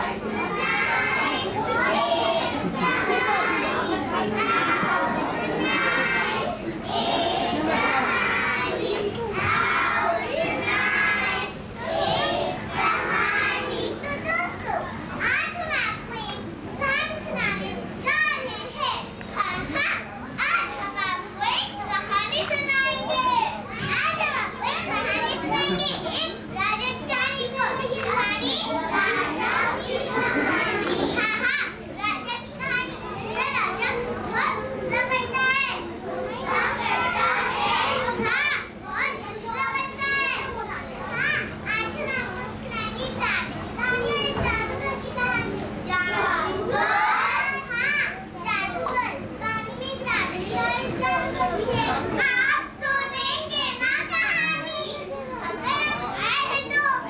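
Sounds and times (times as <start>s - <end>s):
young children speaking: 0.0s - 57.0s.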